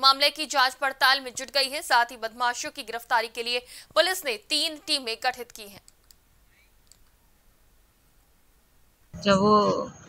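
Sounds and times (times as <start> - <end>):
faint clicks: 5.4 - 6.2, 6.8 - 7.2.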